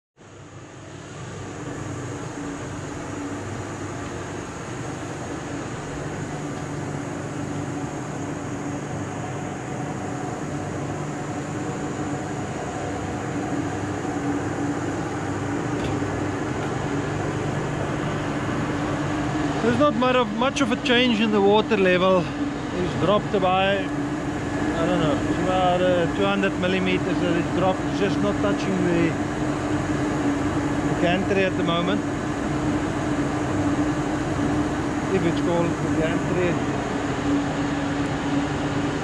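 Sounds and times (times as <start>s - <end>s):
steady low hum: 0.2s - 39.0s.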